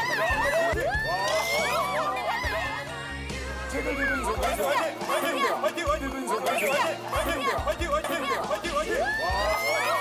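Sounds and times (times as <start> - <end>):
background music: 0.0 - 10.0
excited voices shouting: 0.0 - 10.0.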